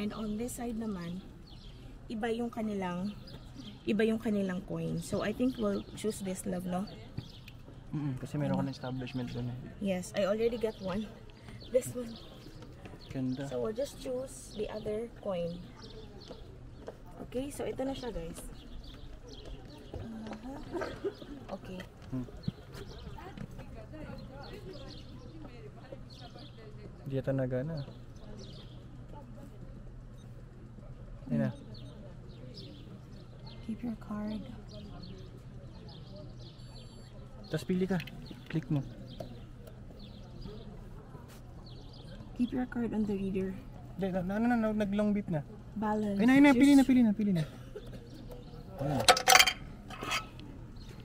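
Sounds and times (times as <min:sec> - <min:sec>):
background chatter of voices: 0:00.0 - 0:51.0.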